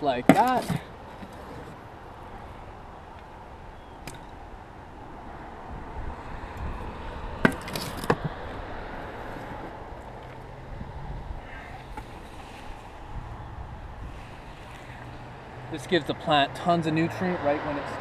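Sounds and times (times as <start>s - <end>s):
steady outdoor hiss: 0.0s - 18.0s
spade scraping and knocking: 0.2s - 1.8s.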